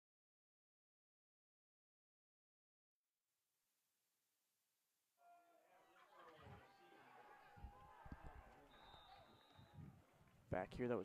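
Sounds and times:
referee's whistle blast: 8.7 - 9.8.

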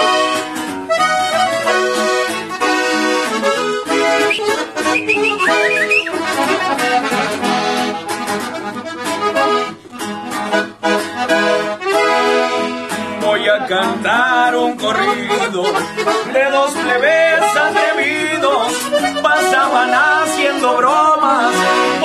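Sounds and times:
accordion playing a melody: 0.0 - 22.0.

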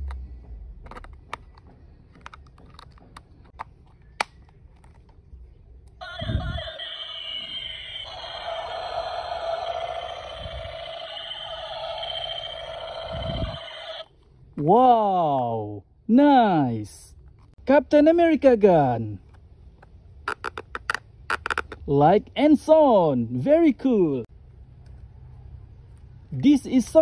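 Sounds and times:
electronic toy gun sound effect: 6.5 - 14.1
plastic toy clicks and snaps: 20.3 - 21.8.

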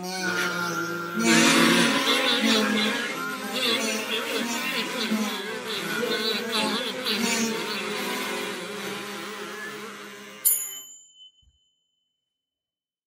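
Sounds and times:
kazoo buzzing a tune: 0.0 - 10.5.

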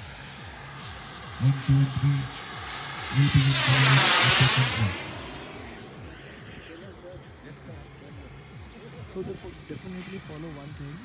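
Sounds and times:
distant jet aircraft: 0.0 - 11.0
man speaking: 1.4 - 2.4, 3.1 - 5.1.

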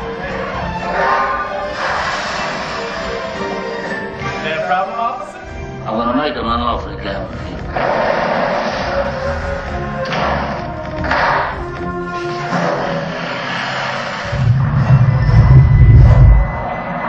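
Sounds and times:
soundtrack music: 0.0 - 17.0
boulder rolling low rumble: 14.3 - 16.6.

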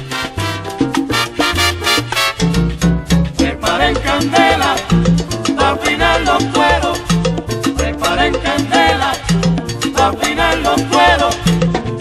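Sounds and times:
salsa band music: 0.0 - 12.0.

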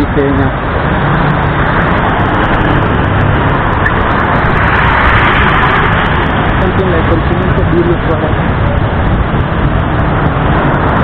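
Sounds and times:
street traffic rumble: 0.0 - 11.0.

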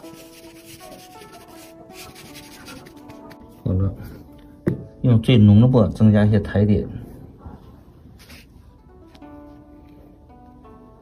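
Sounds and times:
ink brush scraping paper: 0.0 - 3.6, 8.2 - 8.5
soft music of held notes: 0.0 - 11.0.

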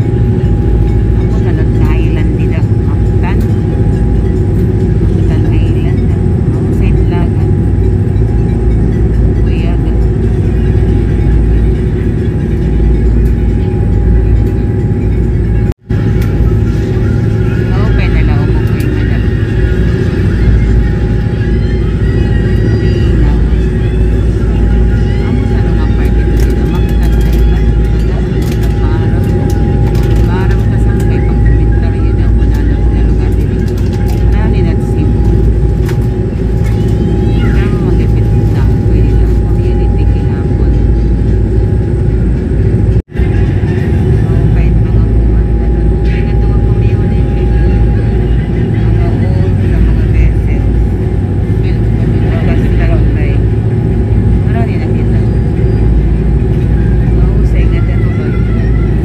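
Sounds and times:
faint passenger voices: 0.0 - 59.0
ferry engines rumbling: 0.0 - 59.0
thin steady whine: 0.0 - 59.0.

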